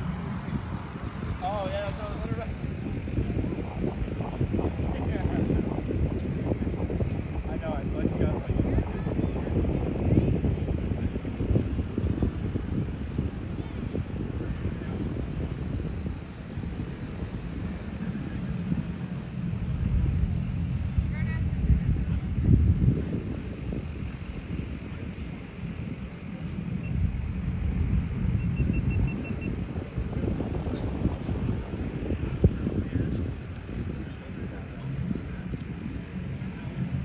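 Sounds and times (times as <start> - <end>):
propeller plane drone: 0.0 - 37.0.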